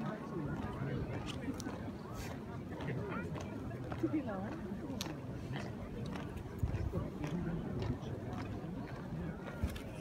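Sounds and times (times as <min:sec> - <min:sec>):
faint onlooker voices: 0:00.0 - 0:10.0
boots marching on cobblestones: 0:00.4 - 0:10.0.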